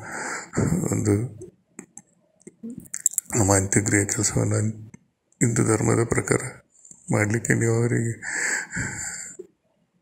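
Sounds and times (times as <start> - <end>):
man speaking on voice message: 0.6 - 2.0, 2.9 - 9.3.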